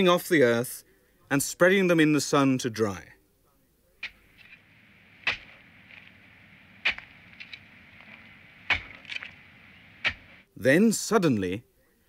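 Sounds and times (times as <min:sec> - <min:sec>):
faint steady background hiss: 0:00.0 - 0:12.0
spade striking soil: 0:04.0 - 0:10.5.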